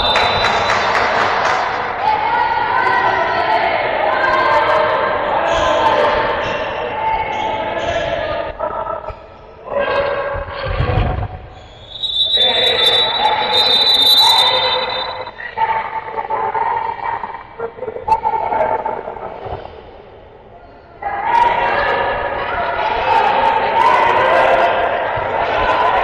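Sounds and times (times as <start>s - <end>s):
voices calling out: 0.0s - 19.6s.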